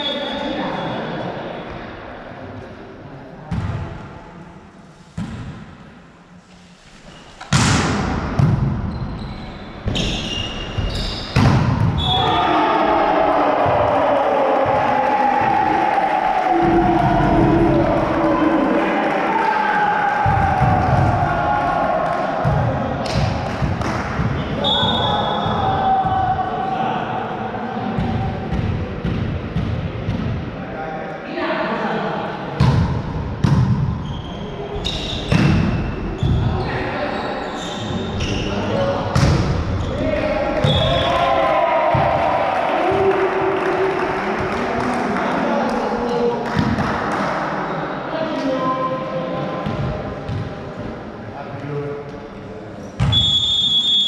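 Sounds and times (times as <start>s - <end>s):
volleyball being struck: 11.3s - 12.0s
loud shouting voices: 12.0s - 23.1s, 24.6s - 27.8s, 39.8s - 46.5s.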